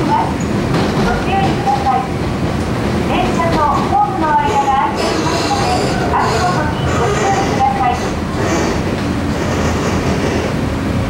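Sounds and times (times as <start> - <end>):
train wheels rumbling on rail: 0.0 - 11.0.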